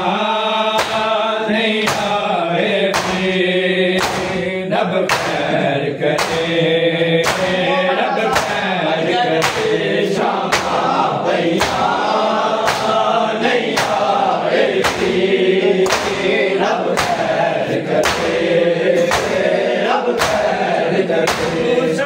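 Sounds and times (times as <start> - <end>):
men chanting a lament: 0.0 - 22.0
hands slapping bare chests: 0.8 - 1.2, 1.8 - 2.3, 2.9 - 3.4, 4.0 - 4.4, 5.1 - 6.6, 7.2 - 8.7, 9.3 - 21.7.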